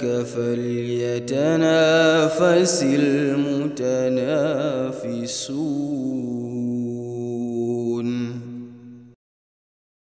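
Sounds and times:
person chanting long note: 0:02.6 - 0:09.2.

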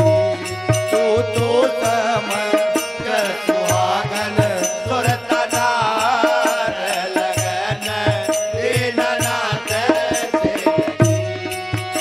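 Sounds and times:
hand drum beating: 0:00.0 - 0:01.6.

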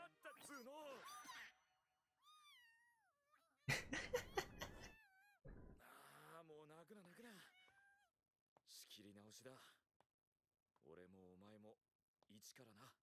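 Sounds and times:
cat meowing: 0:02.2 - 0:05.4, 0:07.4 - 0:08.1.

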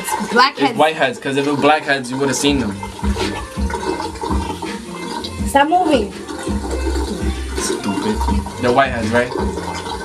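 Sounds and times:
water running: 0:00.0 - 0:10.0
dull low thumps: 0:02.5 - 0:04.7, 0:05.4 - 0:07.6.

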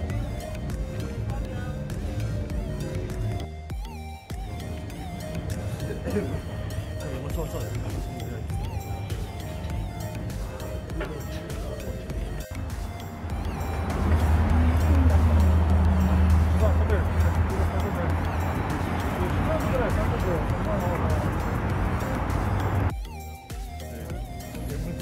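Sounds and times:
music: 0:00.0 - 0:25.0
large vehicle engine rumble: 0:04.7 - 0:22.9
people talking: 0:05.9 - 0:22.9.

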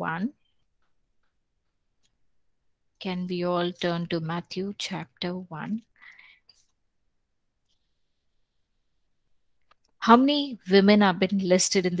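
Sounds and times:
woman speaking: 0:00.0 - 0:00.4, 0:03.0 - 0:06.0, 0:10.0 - 0:12.0.

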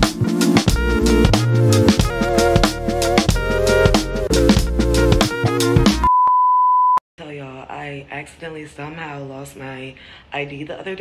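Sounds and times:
electronic beep: 0:06.1 - 0:07.0
woman talking: 0:07.2 - 0:11.0.

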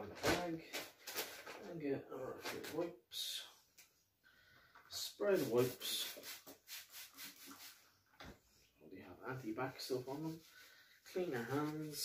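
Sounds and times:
wet wipes rubbing and handling: 0:05.0 - 0:08.0, 0:09.5 - 0:12.0.

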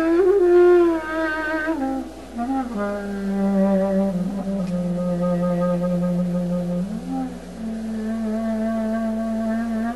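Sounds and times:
clarinet holding low note: 0:00.0 - 0:09.9.

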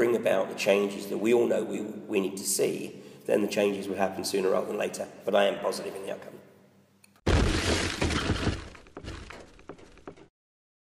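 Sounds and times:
shattering crash of debris: 0:07.3 - 0:09.5.

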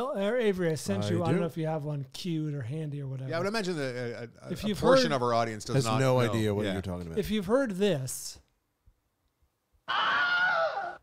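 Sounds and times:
man screaming: 0:09.9 - 0:11.0.

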